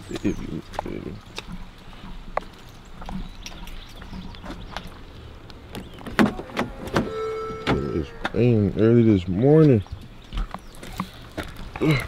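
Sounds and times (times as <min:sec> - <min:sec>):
rain taps and drips: 0:00.0 - 0:12.0.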